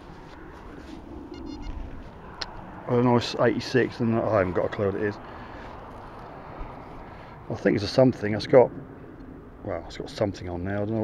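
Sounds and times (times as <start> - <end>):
metal detector high-pitched tone: 1.3 - 1.8.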